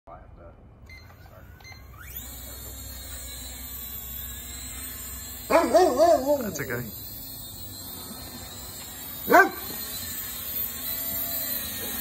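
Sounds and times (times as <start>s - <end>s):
drone propeller motors whining: 0.9s - 12.0s.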